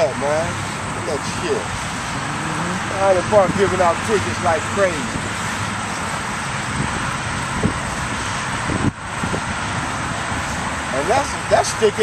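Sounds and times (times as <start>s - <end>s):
road traffic noise: 0.0s - 12.0s.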